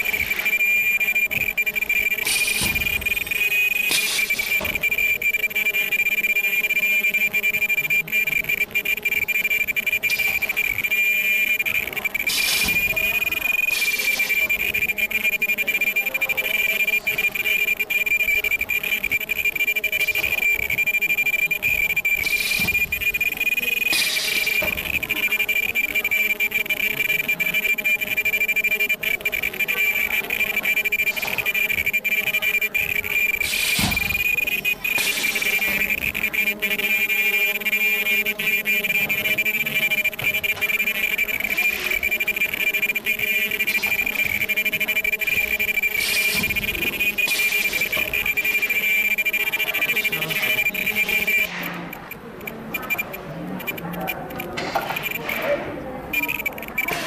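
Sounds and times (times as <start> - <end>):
welding machine high-pitched whine: 0.0 - 57.0.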